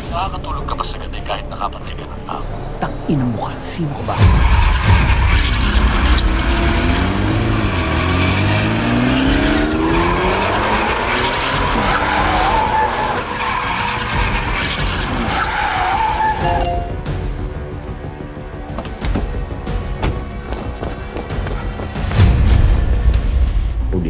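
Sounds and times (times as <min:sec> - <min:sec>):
car engines revving: 0:04.1 - 0:16.4
tyres squealing: 0:09.9 - 0:16.6.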